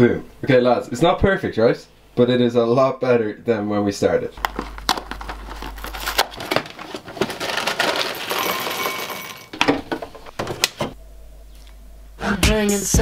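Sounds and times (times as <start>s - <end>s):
rustling of handled objects: 4.4s - 10.5s
objects clicking and knocking: 4.4s - 11.0s.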